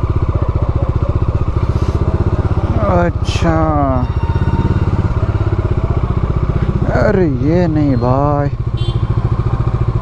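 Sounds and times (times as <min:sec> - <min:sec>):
motorcycle engine idling: 0:00.0 - 0:10.0.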